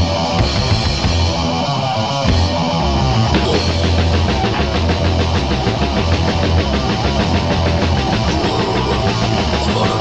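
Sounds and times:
doom metal with distorted guitar: 0.0s - 10.0s.

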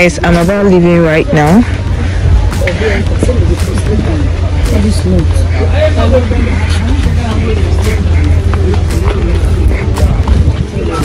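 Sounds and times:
people talking overlapping: 0.0s - 11.0s
steady low rumble: 0.0s - 11.0s.

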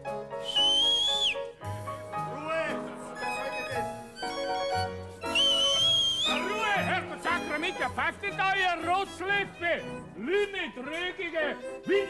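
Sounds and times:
shrill whistle: 0.4s - 1.5s, 3.2s - 7.9s
dance music: 4.8s - 12.0s.

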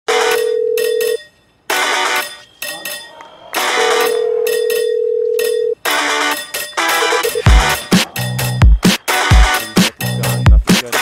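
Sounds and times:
scoring machine buzzer: 3.6s - 5.3s.

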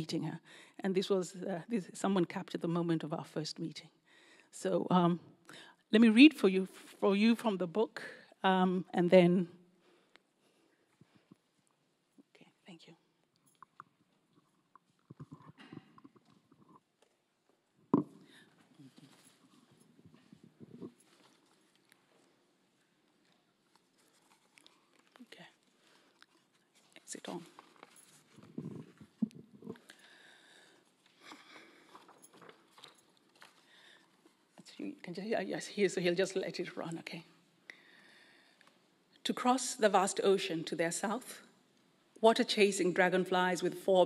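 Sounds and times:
book handling rustles: 18.0s - 29.9s, 30.9s - 33.8s.

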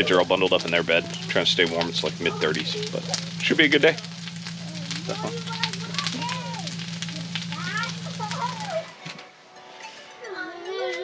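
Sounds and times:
food sizzling in a pan: 0.0s - 8.9s
low hum: 0.0s - 8.9s
voices: 0.0s - 9.2s, 10.1s - 11.0s.

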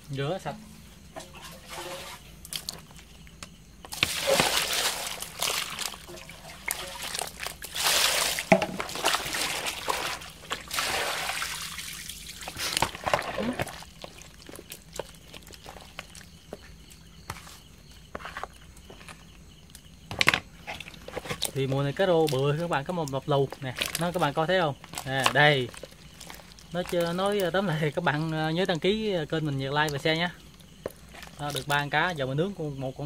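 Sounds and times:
water sloshing from a plastic basin: 0.3s - 33.0s
water trickling: 1.1s - 18.2s, 20.6s - 32.3s
small knocks: 8.5s - 8.9s.

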